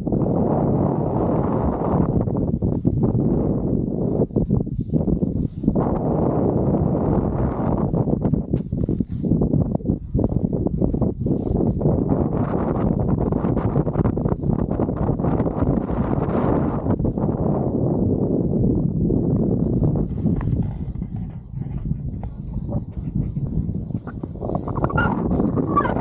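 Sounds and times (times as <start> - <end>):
snowboard scraping over snow: 0.0 - 18.6, 19.4 - 26.0
wind buffeting microphone: 0.0 - 26.0.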